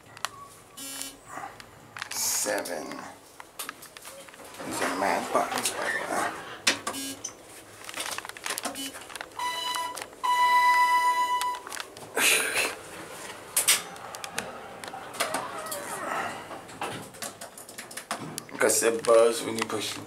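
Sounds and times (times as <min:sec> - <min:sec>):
elevator electronic beeps: 0:06.9 - 0:07.3, 0:08.7 - 0:11.7.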